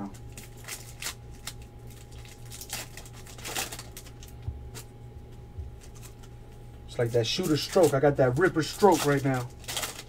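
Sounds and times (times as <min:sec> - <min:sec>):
foil wrapper crinkling and tearing: 0:00.1 - 0:04.9, 0:05.8 - 0:10.0.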